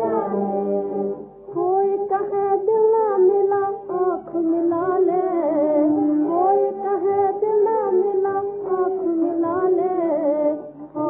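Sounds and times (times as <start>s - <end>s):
old film song with melody: 0.0s - 11.0s.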